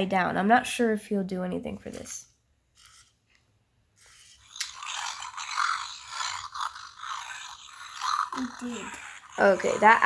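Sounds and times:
toy electronic roar: 4.0s - 10.0s.

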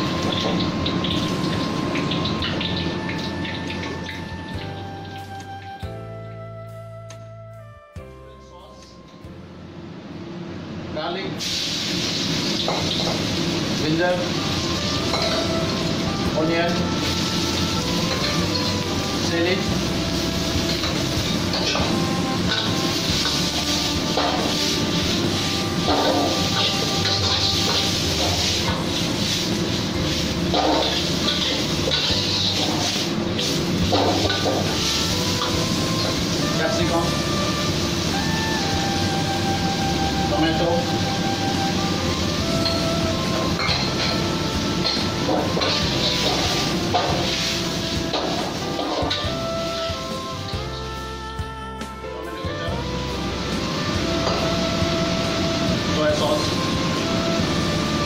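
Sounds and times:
vegetables sizzling in hot oil: 0.0s - 4.8s, 11.4s - 50.8s, 53.0s - 58.0s
background music: 0.0s - 10.6s, 12.0s - 58.0s
metal spatula scraping a wok: 25.8s - 36.2s, 44.8s - 49.4s.

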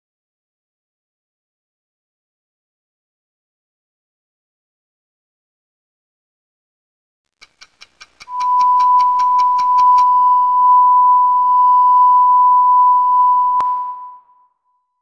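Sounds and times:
rapid ticks: 7.3s - 10.1s
sharp click: 7.4s - 10.1s
high electronic beep tone: 8.3s - 14.4s.

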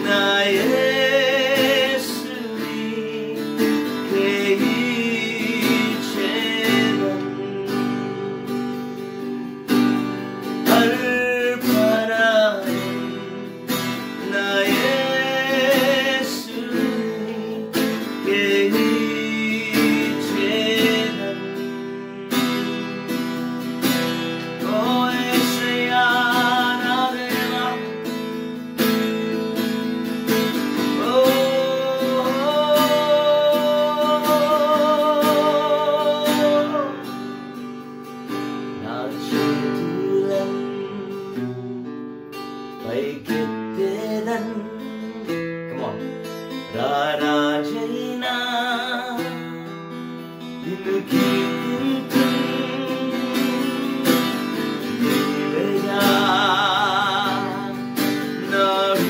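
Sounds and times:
man singing: 0.0s - 59.0s
strummed acoustic guitar: 0.0s - 59.0s.

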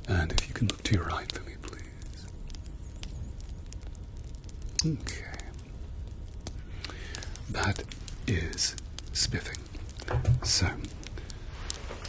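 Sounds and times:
man speaking softly: 0.0s - 2.3s, 4.8s - 5.6s, 7.4s - 11.1s.

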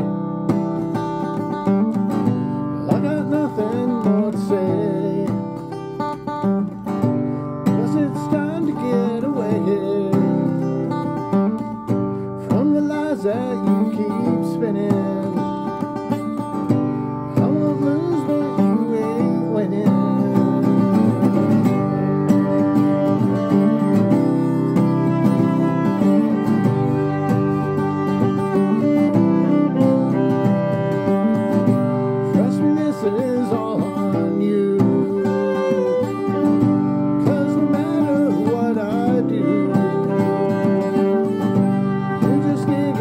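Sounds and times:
man singing: 0.0s - 0.2s, 2.6s - 43.0s
acoustic guitar: 0.0s - 43.0s
bowed violin: 0.0s - 43.0s.

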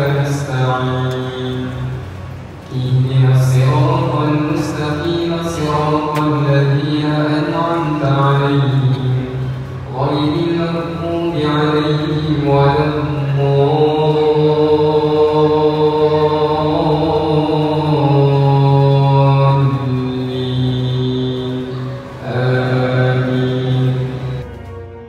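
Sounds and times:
man chanting: 0.0s - 24.8s.

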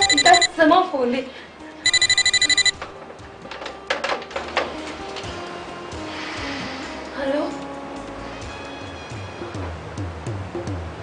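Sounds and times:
telephone ringing: 0.0s - 0.6s, 1.8s - 2.8s.

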